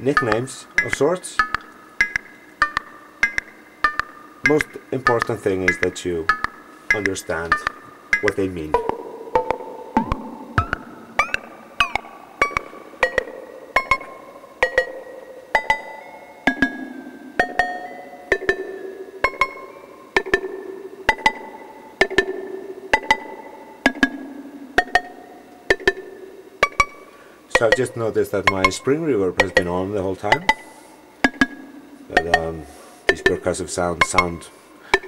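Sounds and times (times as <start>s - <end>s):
synthesizer percussive notes: 0.0s - 35.0s.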